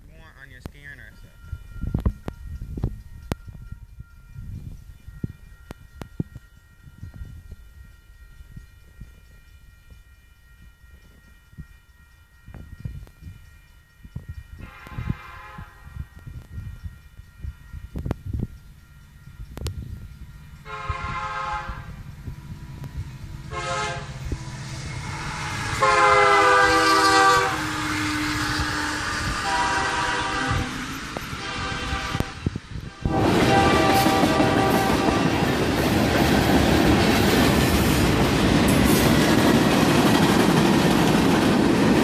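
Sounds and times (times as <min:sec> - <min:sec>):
diesel locomotives rumbling: 0:00.0 - 0:42.0
rolling train cars: 0:00.0 - 0:42.0
train air horn blasts: 0:14.6 - 0:18.4, 0:20.6 - 0:36.5.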